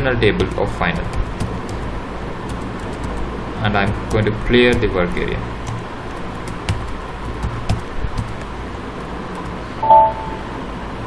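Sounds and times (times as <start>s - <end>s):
steady background hiss: 0.0s - 11.0s
brief pitched tone: 9.8s - 10.6s.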